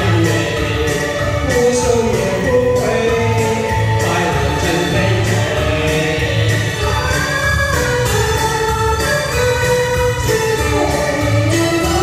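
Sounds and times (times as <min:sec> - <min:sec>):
backing track with bass beat: 0:00.0 - 0:12.0
held keyboard chords: 0:00.0 - 0:12.0
live singing through microphones: 0:00.0 - 0:12.0.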